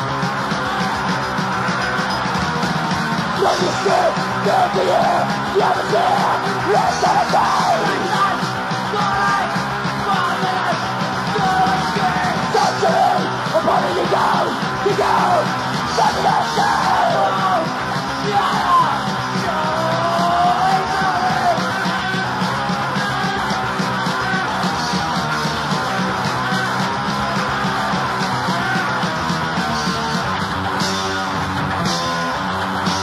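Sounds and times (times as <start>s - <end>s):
fast punk metal band: 0.0s - 33.0s
shouted vocal: 3.3s - 24.7s, 26.4s - 29.0s.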